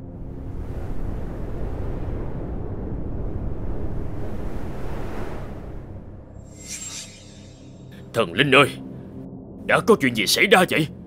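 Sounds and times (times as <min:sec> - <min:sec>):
deep rushing wind effect: 0:00.2 - 0:08.0.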